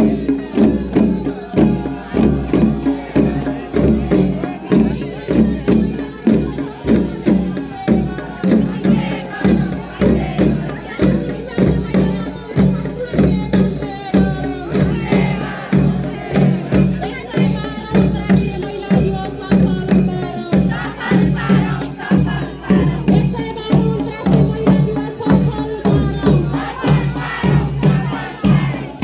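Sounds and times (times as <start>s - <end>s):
crowd voices: 0.0s - 29.0s
deep drum beating march rhythm: 0.0s - 29.0s.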